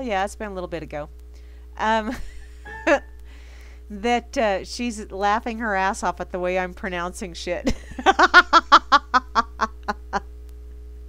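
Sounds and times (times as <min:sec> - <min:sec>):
low electrical hum: 0:00.0 - 0:11.0
woman laughing: 0:02.1 - 0:03.2, 0:07.6 - 0:10.3.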